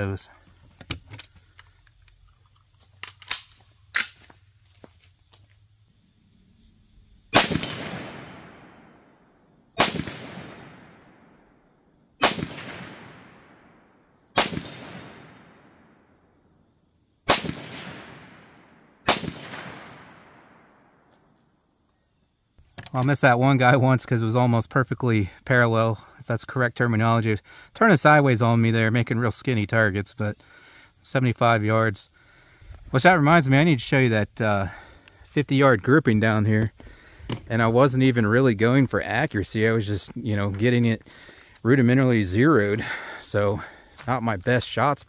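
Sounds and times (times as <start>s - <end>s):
rifle shots with echo: 7.3s - 9.2s, 9.8s - 11.4s, 12.2s - 16.0s, 17.3s - 20.8s.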